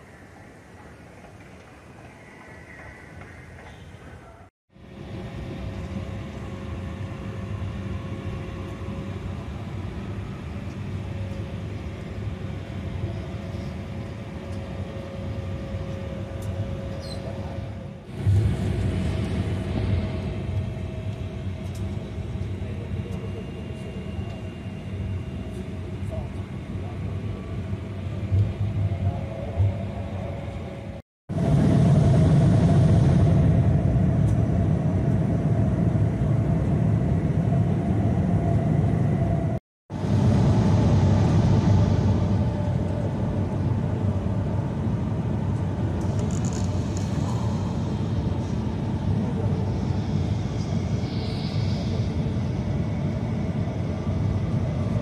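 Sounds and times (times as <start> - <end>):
jet engine and airflow rumble: 0.0 - 55.0.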